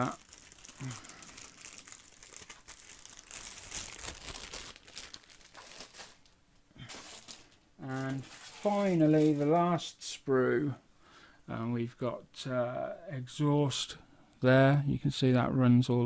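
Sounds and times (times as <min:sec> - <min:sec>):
plastic bag crinkling: 0:00.0 - 0:09.9.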